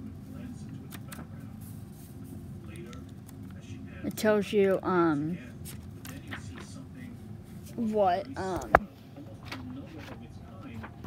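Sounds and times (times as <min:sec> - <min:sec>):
steady low hum: 0:00.0 - 0:11.0
book pages turning: 0:05.6 - 0:06.8.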